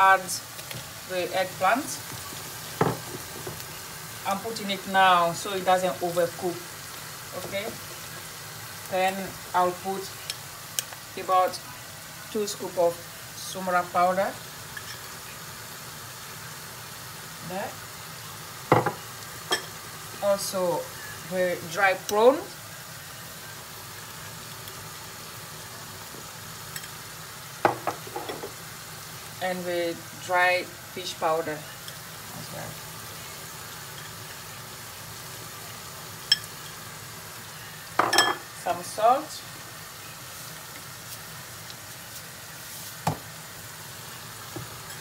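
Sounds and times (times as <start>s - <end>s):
onions sizzling in a pan: 0.0s - 45.0s.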